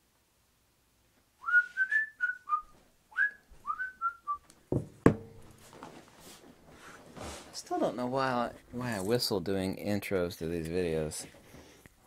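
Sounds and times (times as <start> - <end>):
man whistling a tune: 1.4 - 4.4
thump: 4.7 - 5.6.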